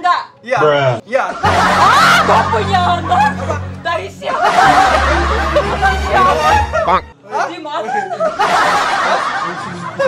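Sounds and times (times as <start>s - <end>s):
group of people laughing: 1.3s - 3.6s, 4.3s - 7.1s, 7.8s - 10.0s.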